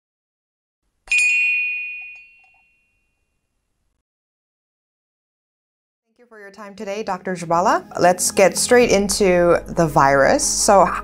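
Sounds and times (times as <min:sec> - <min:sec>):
bright bell ding: 0:01.1 - 0:03.0.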